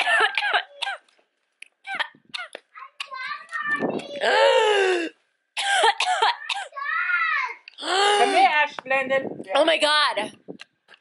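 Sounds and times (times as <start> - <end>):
woman coughing and clearing throat: 0.0 - 1.1, 1.8 - 2.6, 5.6 - 6.8.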